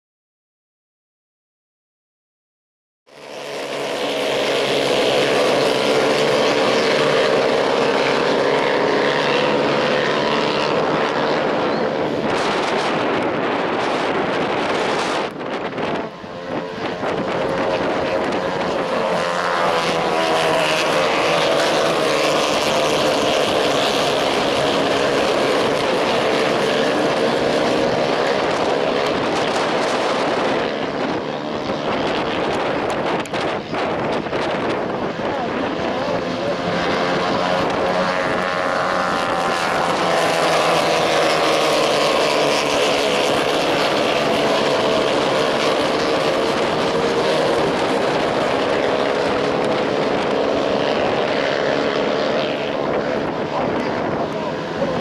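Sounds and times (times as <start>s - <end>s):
race car engines droning: 3.1s - 55.0s.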